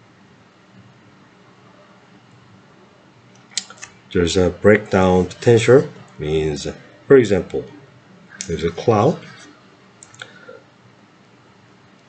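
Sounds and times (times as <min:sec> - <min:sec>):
person speaking: 0:04.1 - 0:09.5.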